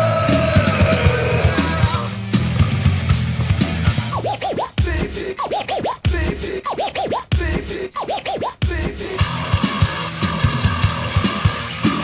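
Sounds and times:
band playing: 0.0 - 5.0, 9.2 - 12.0.

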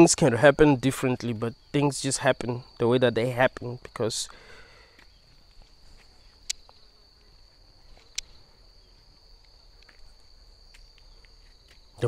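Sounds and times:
insects trilling: 0.0 - 12.0
sharp ticks: 6.4 - 6.8.

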